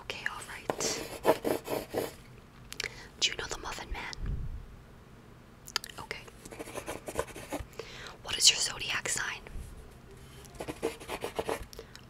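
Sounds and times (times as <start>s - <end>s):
soft whispering: 0.0s - 1.2s, 3.2s - 4.2s, 5.8s - 6.7s, 8.2s - 10.6s
pencil writing on paper: 0.7s - 2.2s, 6.5s - 7.6s, 10.6s - 11.6s.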